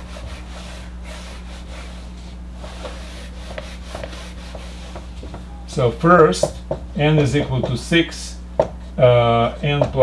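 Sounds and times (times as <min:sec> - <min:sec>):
eraser rubbing on whiteboard: 0:00.0 - 0:05.1.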